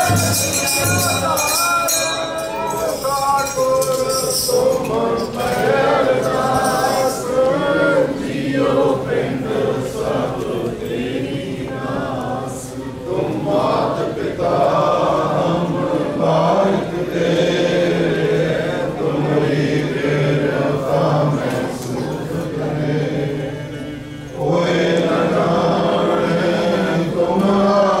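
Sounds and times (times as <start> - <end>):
congregation chanting: 0.0 - 28.0.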